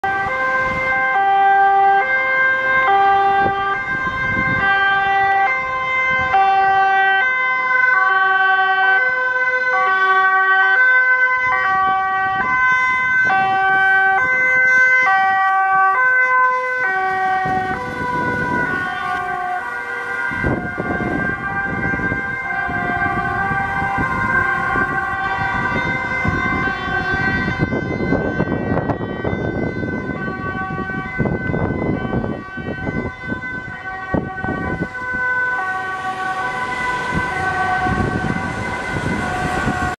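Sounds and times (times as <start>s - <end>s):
two-tone ambulance siren: 0.0s - 39.9s.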